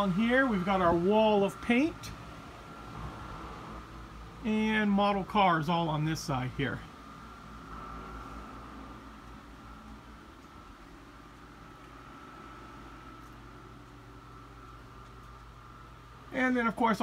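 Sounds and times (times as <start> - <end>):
constant hum and hiss: 0.0 - 17.0
faint steady whine: 0.0 - 17.0.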